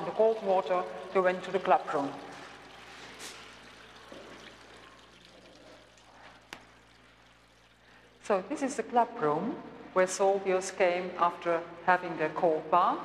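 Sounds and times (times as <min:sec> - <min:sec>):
water pouring into bath: 0:00.0 - 0:08.9.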